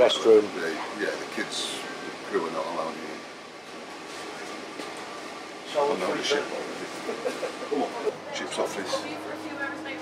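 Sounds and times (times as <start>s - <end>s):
ship machinery humming: 0.0s - 10.0s.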